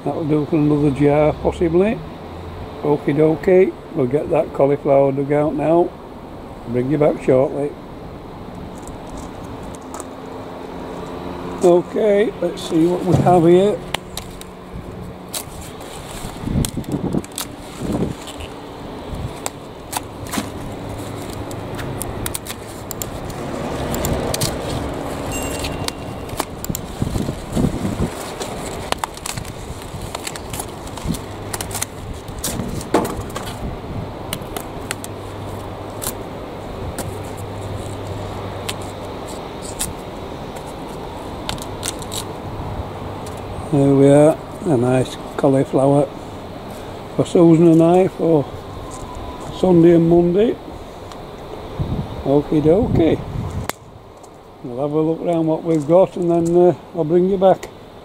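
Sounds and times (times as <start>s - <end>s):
leaves crackling and rustling: 8.3s - 57.7s
secateurs snipping stalks: 12.6s - 18.6s, 19.2s - 33.6s, 34.3s - 36.3s, 37.0s - 42.4s.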